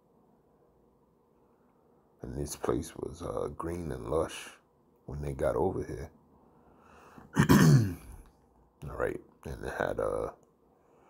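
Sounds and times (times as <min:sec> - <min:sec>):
man clearing his throat: 0:07.3 - 0:08.2.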